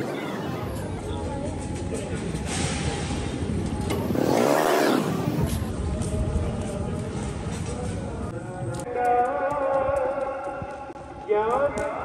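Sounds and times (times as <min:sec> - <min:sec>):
car engine running: 0:03.7 - 0:05.7.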